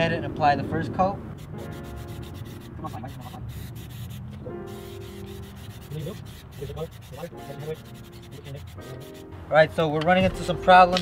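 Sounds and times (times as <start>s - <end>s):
aerosol can spraying in spurts: 1.4s - 9.2s.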